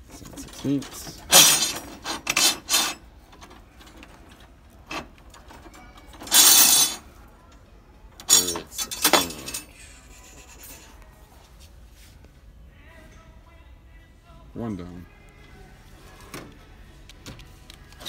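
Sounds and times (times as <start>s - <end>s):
metal rods clinking and scraping: 0.0s - 7.1s, 8.2s - 10.9s.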